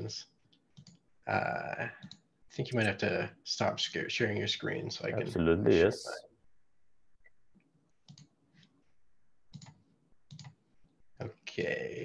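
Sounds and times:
faint computer clicks: 0:00.4 - 0:01.0, 0:07.2 - 0:08.8, 0:09.5 - 0:10.6.

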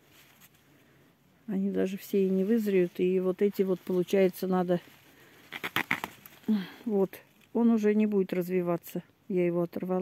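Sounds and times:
leaves rustling: 0:00.0 - 0:09.0
plant stem snapping: 0:05.5 - 0:06.4.

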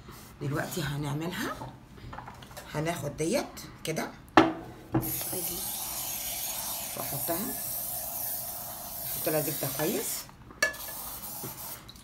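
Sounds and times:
cooking spray can hissing: 0:05.0 - 0:11.9.

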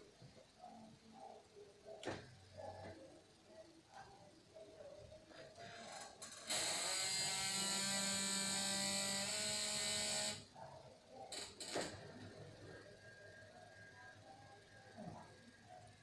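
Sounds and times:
electric bed motor running: 0:05.5 - 0:10.6.

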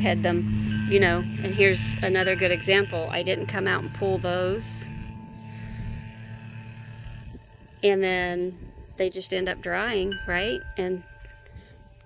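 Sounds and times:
steady hum of held tones: 0:00.0 - 0:12.0.

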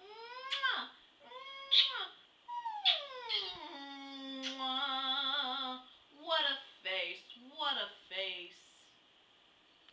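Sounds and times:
woman singing without words: 0:04.5 - 0:05.9.

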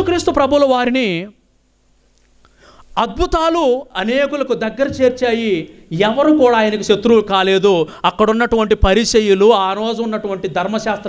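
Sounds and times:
man preaching through microphone: 0:00.0 - 0:01.4, 0:03.0 - 0:11.0.

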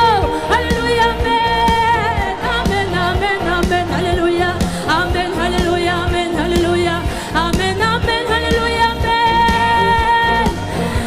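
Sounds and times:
band with driving beat: 0:00.0 - 0:11.0
person singing: 0:00.0 - 0:11.0.

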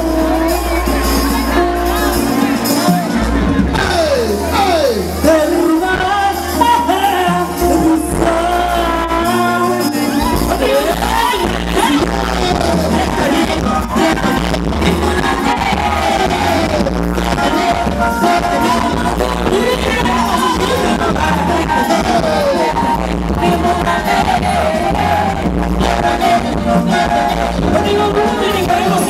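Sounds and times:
bass line: 0:00.0 - 0:29.0
live pop song through speakers: 0:00.0 - 0:29.0.

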